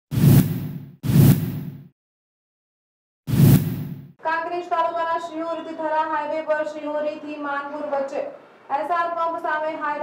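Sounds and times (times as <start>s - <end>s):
whooshes: 0.1s - 1.9s, 3.3s - 4.1s.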